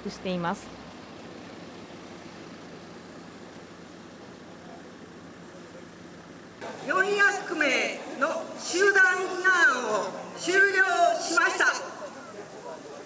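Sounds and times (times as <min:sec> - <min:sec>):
bus engine idling: 0:00.0 - 0:13.0.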